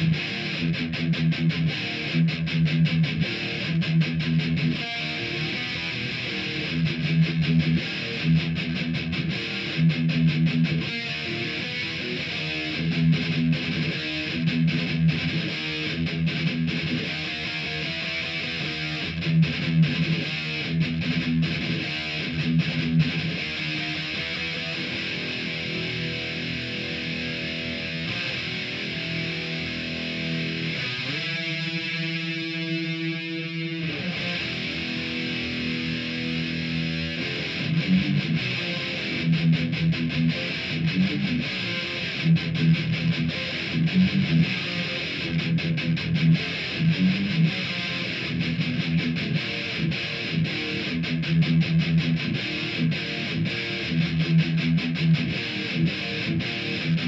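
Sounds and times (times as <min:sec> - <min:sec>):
bass: 0:00.0 - 0:17.8, 0:18.5 - 0:30.9, 0:34.3 - 0:57.0
distorted electric guitar riff: 0:00.0 - 0:57.0.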